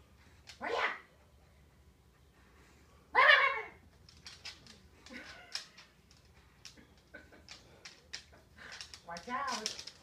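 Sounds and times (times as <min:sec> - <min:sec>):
bark-like yelp: 0:03.1 - 0:03.8.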